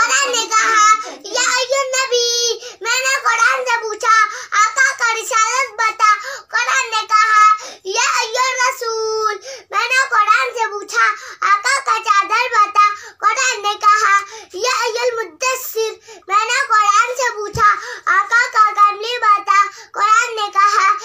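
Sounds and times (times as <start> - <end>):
boy chanting: 0.0 - 21.0.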